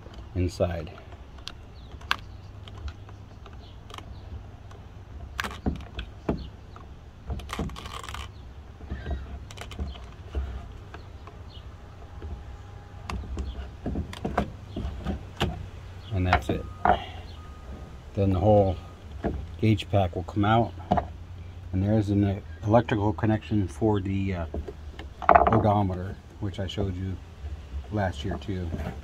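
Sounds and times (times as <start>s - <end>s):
low steady rumble: 0.0s - 29.0s.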